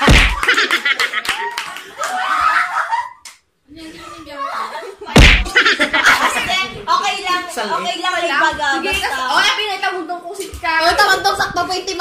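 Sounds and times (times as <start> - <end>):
loud smack with low thud: 0.0 - 0.5, 5.2 - 5.6
excited voices: 0.0 - 9.8.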